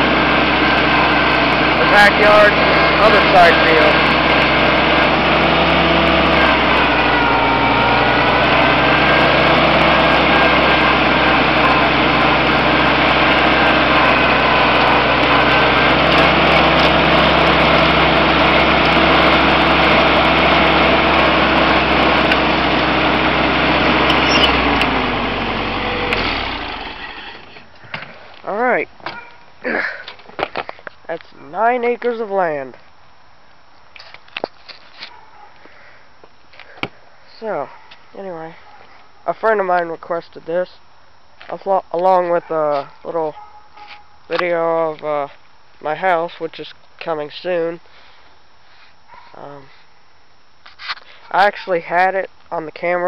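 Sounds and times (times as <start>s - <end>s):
tractor engine running: 0.0s - 29.3s.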